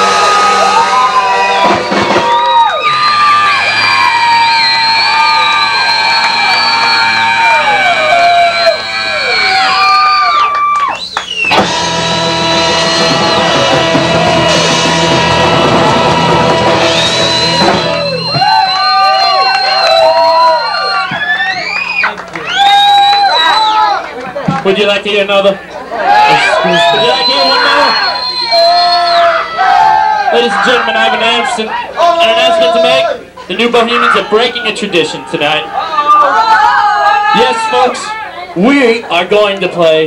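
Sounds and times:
live ska band playing: 0:00.0 - 0:10.5, 0:11.2 - 0:21.2.

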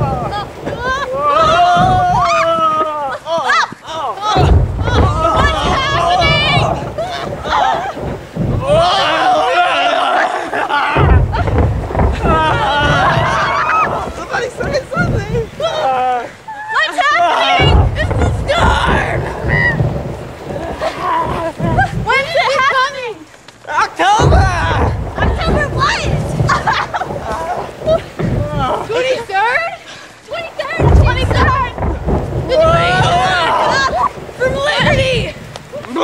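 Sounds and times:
high shout: 0:00.0 - 0:08.0, 0:15.6 - 0:20.0
wind buffeting microphone: 0:00.0 - 0:16.6, 0:17.4 - 0:36.0
children shouting and squealing: 0:00.0 - 0:23.4, 0:24.0 - 0:36.0
young people's voices: 0:00.0 - 0:36.0.

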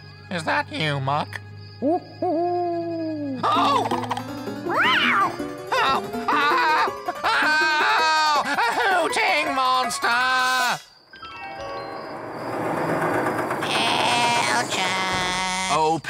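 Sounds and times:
background music: 0:00.0 - 0:10.4
cartoon character frightened cries: 0:04.7 - 0:10.9.

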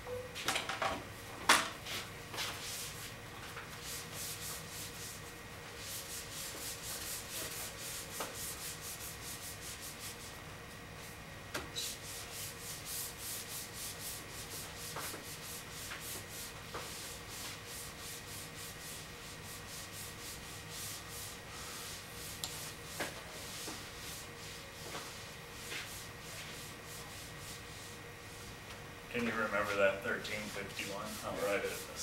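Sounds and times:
eraser rubbing on a whiteboard: 0:03.7 - 0:05.2, 0:05.8 - 0:10.3, 0:11.8 - 0:28.0, 0:29.4 - 0:32.0.

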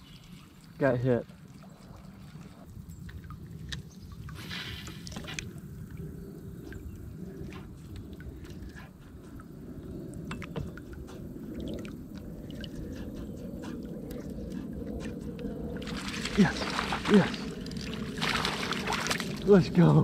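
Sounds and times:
steady low rumble: 0:01.9 - 0:20.0
water splashing and dripping: 0:10.1 - 0:20.0.

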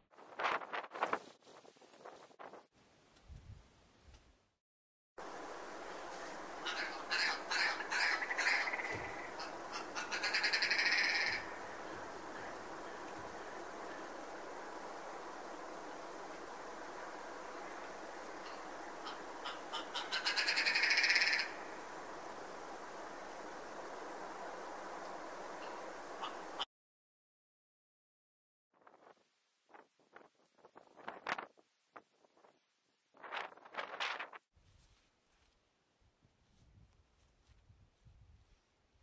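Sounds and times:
background hiss: 0:05.2 - 0:26.7
grouse calling: 0:06.0 - 0:14.3, 0:17.5 - 0:21.8, 0:25.6 - 0:26.7.

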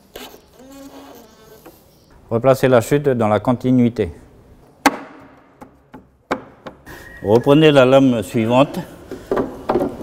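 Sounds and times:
floorboard knocking onto joists: 0:04.8 - 0:06.9.

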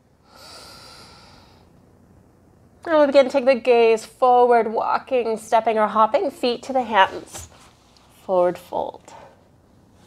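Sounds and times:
woman breathing out: 0:00.2 - 0:01.7.

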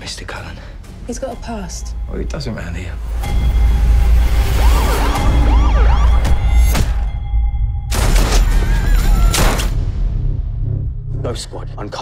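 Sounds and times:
wailing pitch glides: 0:04.0 - 0:06.7
deep bass drone: 0:09.8 - 0:12.0.

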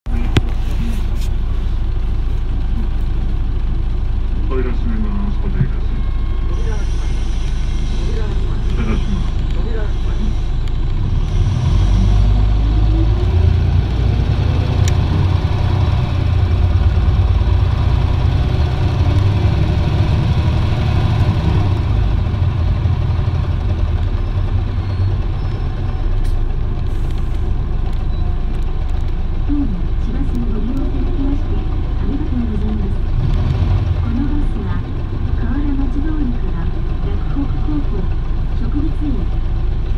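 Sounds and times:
bus diesel engine: 0:00.0 - 0:39.9
muffled voices: 0:07.8 - 0:10.6.

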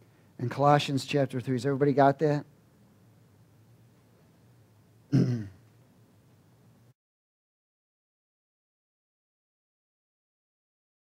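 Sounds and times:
faint room hum: 0:00.0 - 0:07.0
man clearing his throat: 0:05.1 - 0:05.6.

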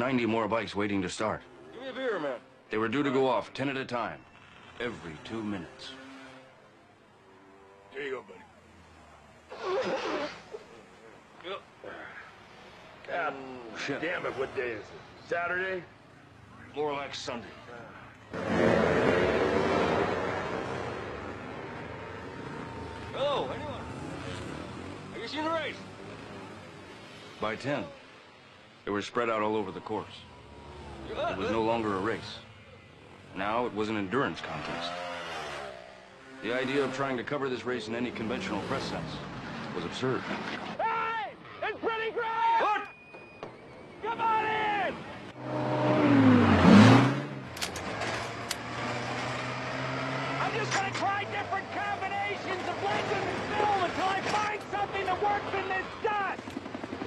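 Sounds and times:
off-road motorcycle engines: 0:00.0 - 0:57.0
sharp clicks: 0:47.5 - 0:48.7.

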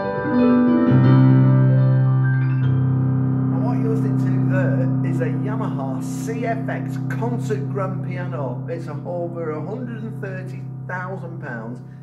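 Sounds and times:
digital piano chords: 0:00.0 - 0:12.0.

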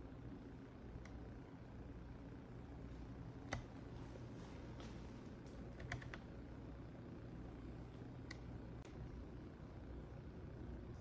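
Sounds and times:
faint low hum: 0:00.0 - 0:11.0
soft clicks: 0:03.4 - 0:03.8, 0:08.2 - 0:09.0.

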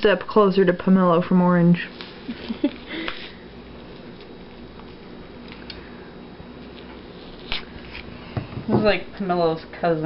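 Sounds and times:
low room hum: 0:00.0 - 0:10.0
fruit peel tearing: 0:06.6 - 0:08.1.

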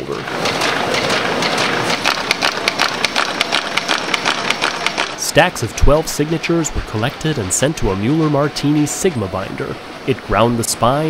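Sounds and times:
rapid mechanical clicks: 0:00.0 - 0:09.1
paper folding machine running: 0:00.0 - 0:11.0.

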